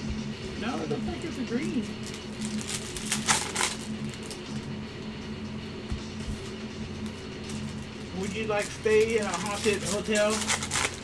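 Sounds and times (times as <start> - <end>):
faint background music: 0.0 - 11.0
trading cards being flipped: 2.0 - 4.6, 6.3 - 11.0.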